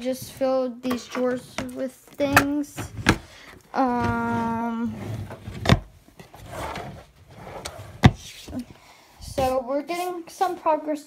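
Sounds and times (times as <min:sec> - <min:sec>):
drawer rubbing and rustling: 0:03.8 - 0:08.7.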